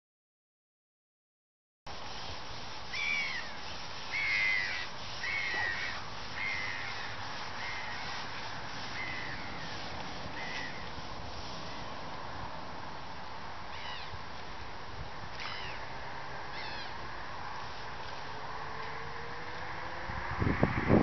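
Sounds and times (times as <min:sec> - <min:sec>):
background hiss: 0:01.9 - 0:20.1
bird calling: 0:02.9 - 0:10.9, 0:13.7 - 0:14.2, 0:15.4 - 0:15.8, 0:16.5 - 0:17.0.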